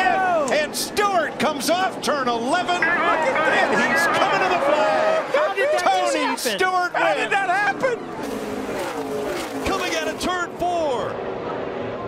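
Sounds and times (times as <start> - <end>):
excited shouting voices: 2.8 - 8.0
crowd roar: 2.8 - 10.4
race car engines passing: 7.5 - 12.0.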